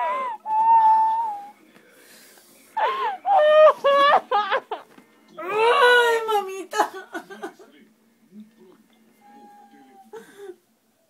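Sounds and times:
woman crying: 0.0s - 1.3s, 2.8s - 4.8s, 5.4s - 7.4s
woman whimpering in pain: 0.0s - 1.4s.

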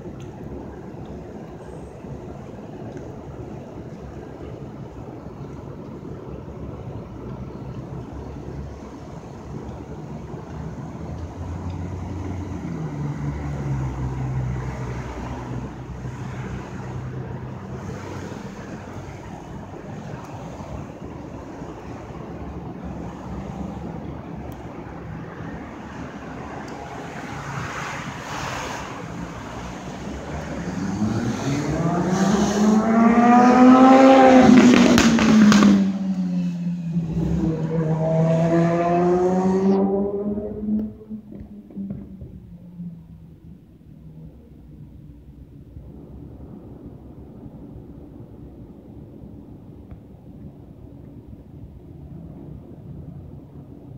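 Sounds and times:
street traffic: 0.0s - 53.9s
vehicle engine accelerating past: 29.7s - 43.2s.

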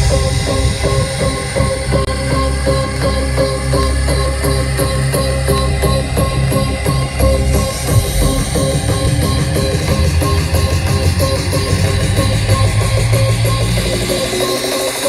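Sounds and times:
dance music with heavy bass: 0.0s - 15.0s.

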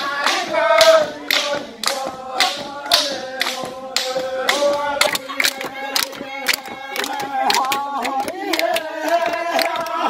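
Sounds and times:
group singing a chant: 0.0s - 10.0s
sharp hand claps: 0.2s - 10.0s.

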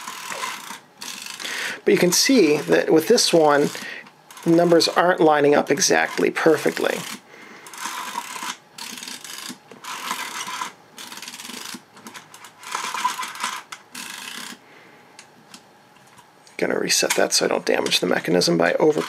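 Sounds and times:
camera film advance winding: 0.0s - 1.5s, 6.1s - 11.8s, 12.6s - 14.6s.

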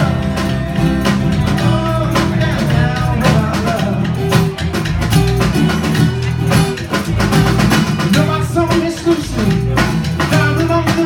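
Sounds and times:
acoustic guitar: 0.0s - 11.0s
drum kit beat: 0.0s - 11.0s
electric bass: 0.0s - 11.0s.

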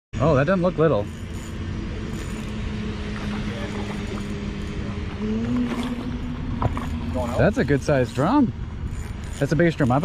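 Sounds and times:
steady low hum: 0.2s - 10.0s
spinning reel being cranked: 1.0s - 2.7s, 6.7s - 10.0s.

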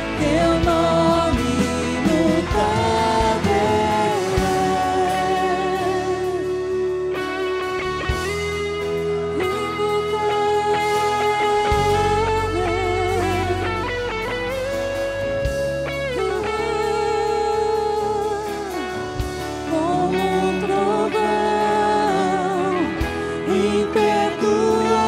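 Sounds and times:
electric guitar held notes: 0.0s - 25.0s
live band playing: 0.0s - 25.0s.

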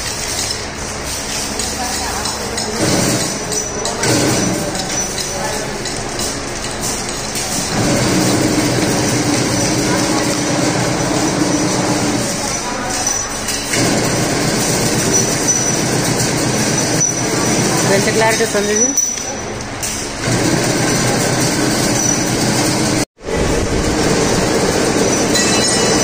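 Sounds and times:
wire mesh clinking on concrete: 0.0s - 20.1s, 24.8s - 26.0s
steady mechanical din: 0.0s - 26.0s.

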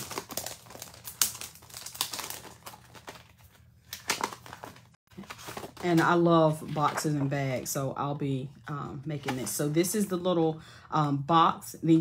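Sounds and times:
plastic packaging crinkling: 0.0s - 6.1s.

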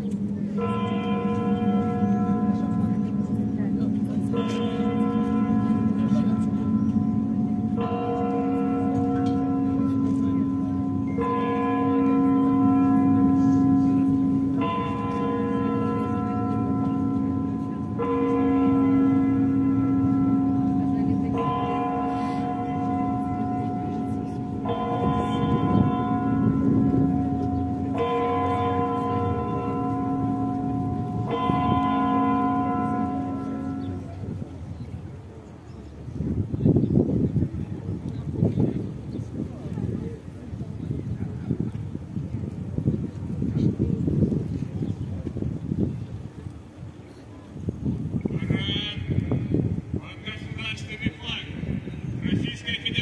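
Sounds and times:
large church bell tolling: 0.0s - 35.0s.

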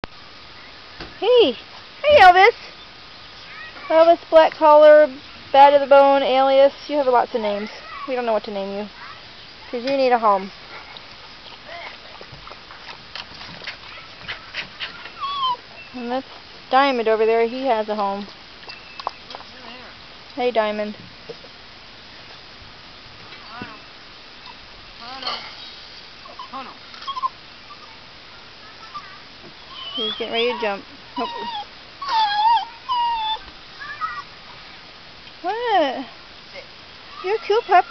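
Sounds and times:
puppy lapping water: 10.7s - 15.6s
puppy whimper: 13.9s - 16.0s, 26.2s - 28.0s, 29.7s - 33.5s.

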